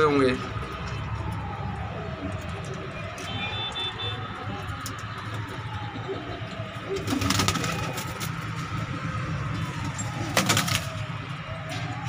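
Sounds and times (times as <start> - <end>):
pigeons cooing: 5.6 - 8.3.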